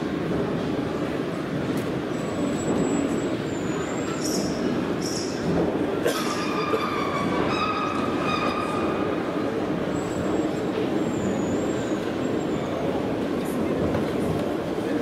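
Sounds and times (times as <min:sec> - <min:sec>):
din of busy exhibition hall: 0:00.0 - 0:15.0.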